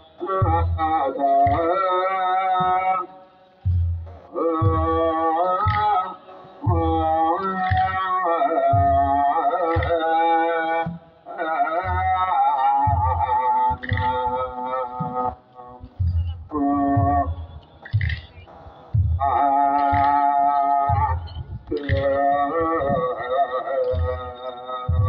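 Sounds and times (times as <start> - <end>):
drum beats: 0.1 - 25.0.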